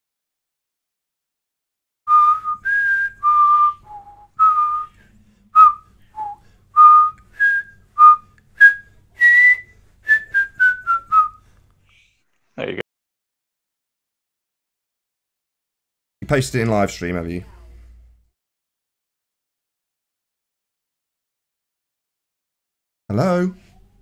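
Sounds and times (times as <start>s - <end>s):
person whistling a tune: 2.1s - 5.0s, 5.6s - 11.4s.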